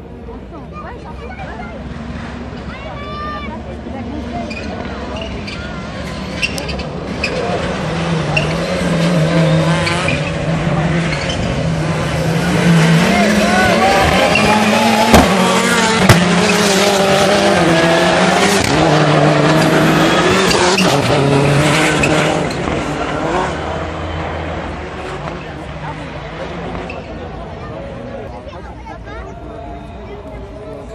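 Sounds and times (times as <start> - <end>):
race car engines revving: 0.0 - 30.9
sharp bangs: 12.7 - 17.0.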